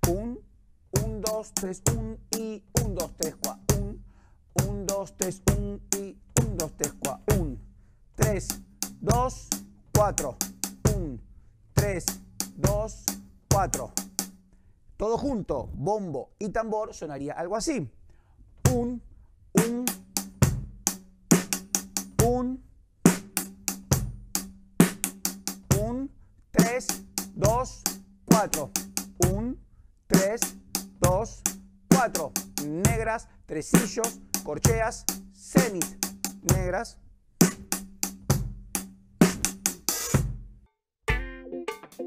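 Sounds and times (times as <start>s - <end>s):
bass drum: 0.0s - 0.4s, 1.0s - 14.4s, 18.6s - 19.0s, 19.6s - 29.6s, 30.2s - 41.2s
bass drum strokes: 4.6s - 14.4s
snare drum strokes: 11.8s - 14.3s, 19.6s - 22.3s, 23.1s - 25.8s, 26.6s - 29.4s, 30.2s - 33.0s, 33.7s - 36.6s, 37.4s - 40.4s.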